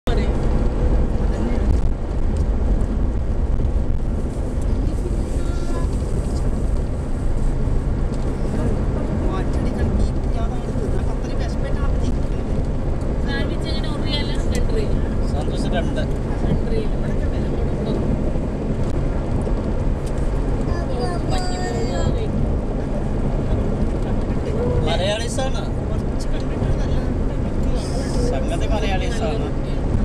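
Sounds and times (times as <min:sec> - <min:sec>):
car engine and tyres rumbling: 0:00.0 - 0:30.0.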